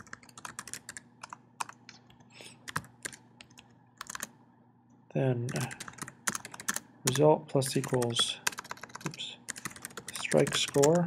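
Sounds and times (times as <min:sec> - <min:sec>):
typing on computer keyboard: 0:00.0 - 0:01.8, 0:02.6 - 0:04.3, 0:05.5 - 0:07.2, 0:07.8 - 0:11.0.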